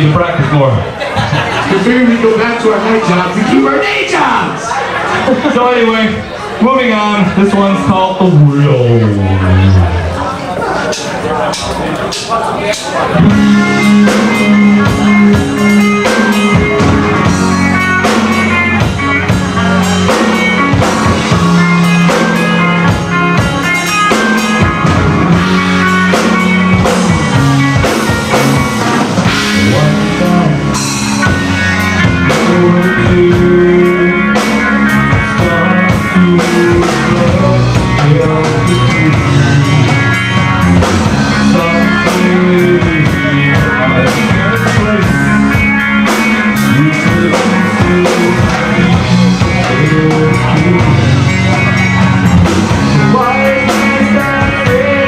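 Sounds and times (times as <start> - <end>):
rock band playing live: 0.0 - 55.0.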